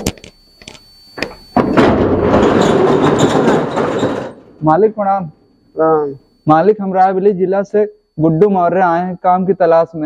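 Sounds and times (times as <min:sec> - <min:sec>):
metal rolling shutter rattling: 0:01.8 - 0:04.6.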